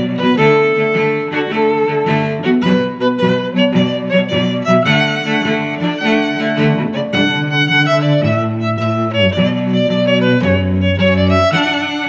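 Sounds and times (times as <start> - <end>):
bowed string music: 0.0 - 12.0.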